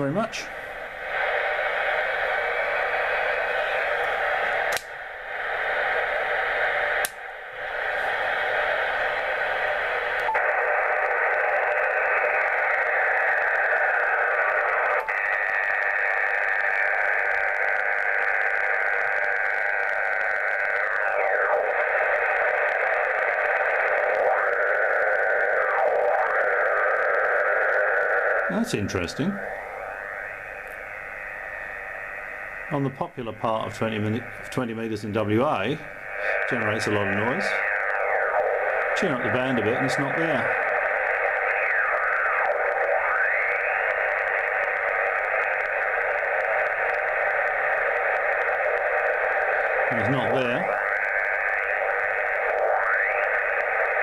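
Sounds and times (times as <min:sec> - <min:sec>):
radio static hiss: 0:00.0 - 0:54.0
radio tones sliding down: 0:00.0 - 0:54.0.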